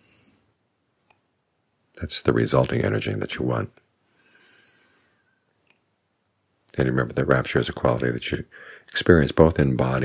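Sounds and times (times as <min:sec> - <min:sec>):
faint click: 0:01.0 - 0:01.3, 0:05.6 - 0:05.9.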